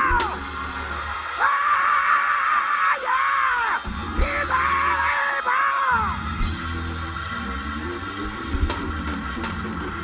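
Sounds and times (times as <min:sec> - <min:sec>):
preacher shouting: 0:00.0 - 0:06.4
church band playing: 0:00.0 - 0:10.0.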